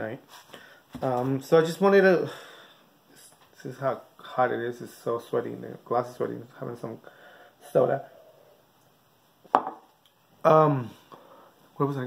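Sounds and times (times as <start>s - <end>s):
glass set down on desk: 9.5s - 9.8s.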